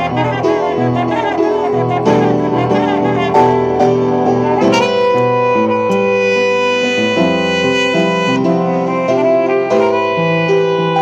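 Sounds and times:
piano chords: 0.0s - 11.0s
trumpets playing held notes: 0.0s - 11.0s.

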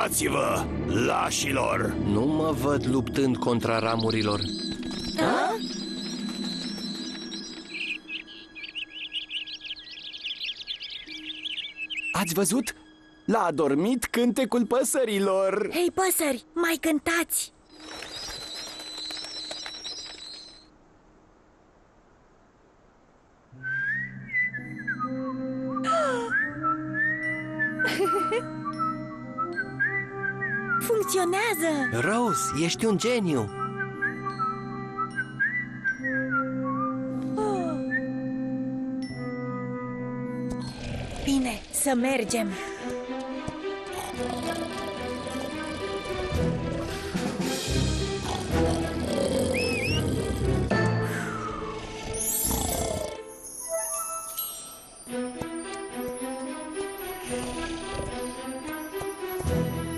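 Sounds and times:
soft background music: 0.0s - 17.5s, 24.1s - 59.9s
whistled melody: 3.6s - 13.3s, 17.7s - 20.6s, 23.6s - 40.5s, 49.6s - 56.8s
flock of small birds twittering: 3.7s - 12.8s, 17.7s - 20.6s.

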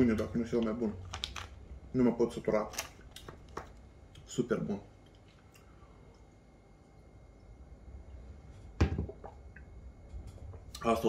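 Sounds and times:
metal mug knocking on wooden table: 8.8s - 9.3s.

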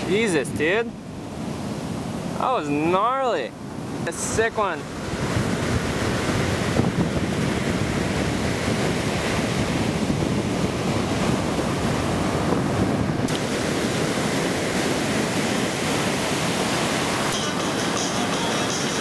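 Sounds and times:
waves breaking: 0.0s - 19.0s
wind buffeting microphone: 3.6s - 17.3s.

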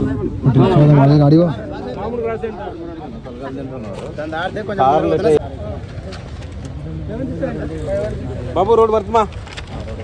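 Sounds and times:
men talking in a crowd: 0.0s - 10.0s.

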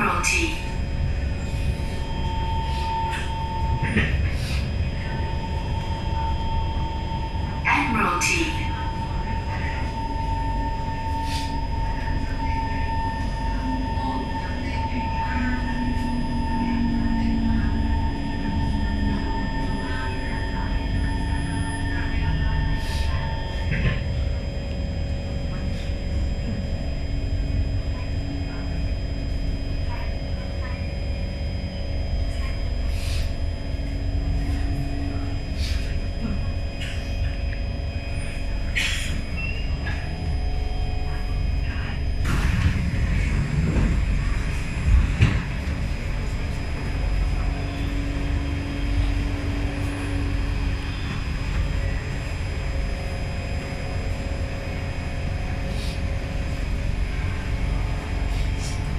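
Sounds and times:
high whine: 0.0s - 58.9s
train interior rumble: 0.0s - 58.9s
low motor tone: 0.6s - 58.8s
train wheels rumbling: 38.3s - 58.9s.

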